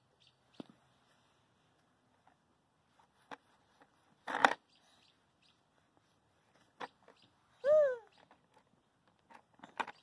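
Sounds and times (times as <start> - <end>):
young child's wordless call: 7.6 - 8.2.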